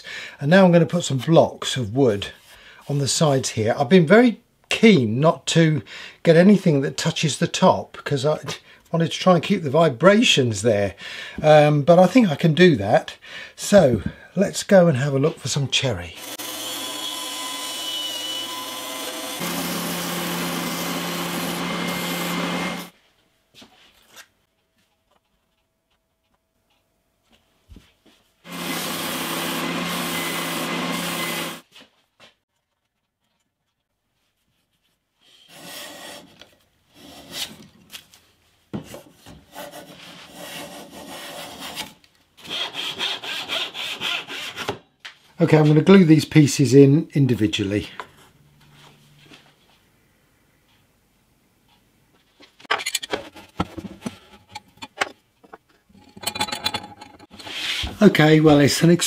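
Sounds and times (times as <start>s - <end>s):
bandsaw cutting wood: 16.2s - 22.9s, 28.5s - 31.6s, 35.5s - 37.6s, 39.5s - 44.8s
belt sander running: 16.2s - 22.9s, 28.5s - 31.6s
hand saw rasping strokes: 16.2s - 22.9s, 35.2s - 37.6s, 39.3s - 44.8s, 57.2s - 58.0s.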